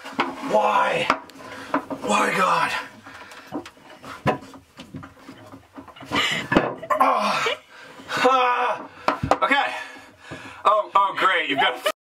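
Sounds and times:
man groaning and straining: 0:00.4 - 0:01.2, 0:02.0 - 0:03.0, 0:06.9 - 0:10.0
man laughing: 0:06.2 - 0:07.6, 0:11.4 - 0:12.0.

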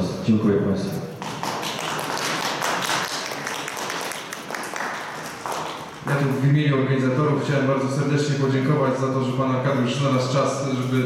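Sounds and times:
audience applauding: 0:01.1 - 0:06.3.

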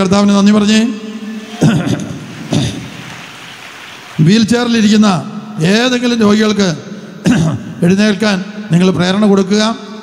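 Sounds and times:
steady background hiss: 0:00.2 - 0:10.0.

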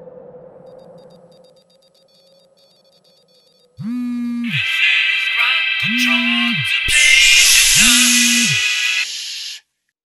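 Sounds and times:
electronic beeps: 0:00.7 - 0:09.1
higher synth tones: 0:03.8 - 0:09.6
electronic music with deep bass: 0:03.9 - 0:09.2.

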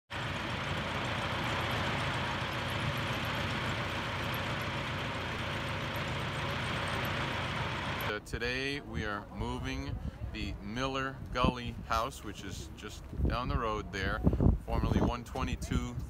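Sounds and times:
truck diesel engine running: 0:00.1 - 0:08.1.

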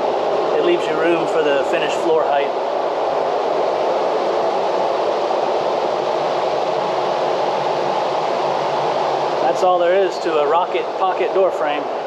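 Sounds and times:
electric fan whooshing: 0:00.0 - 0:12.0.

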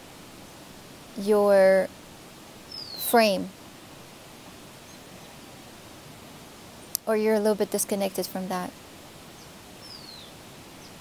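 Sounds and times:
background hiss: 0:00.0 - 0:11.0
person speaking: 0:01.2 - 0:01.9, 0:03.0 - 0:03.5, 0:07.0 - 0:08.7.

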